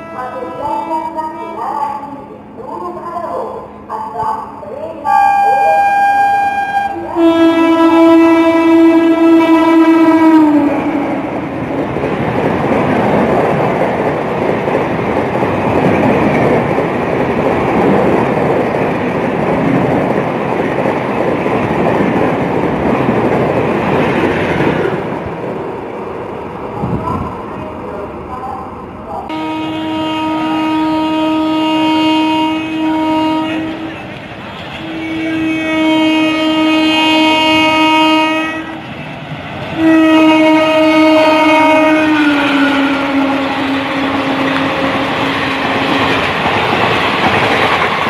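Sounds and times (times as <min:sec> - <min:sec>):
train horn: 0:00.0 - 0:01.7, 0:05.1 - 0:11.4, 0:29.3 - 0:34.2, 0:34.8 - 0:38.8, 0:39.8 - 0:46.0
train wheels rushing on rails: 0:07.2 - 0:48.0.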